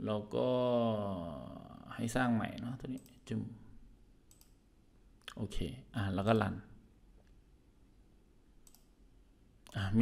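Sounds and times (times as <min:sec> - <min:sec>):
computer mouse clicking: 0:04.3 - 0:04.6, 0:08.6 - 0:09.0.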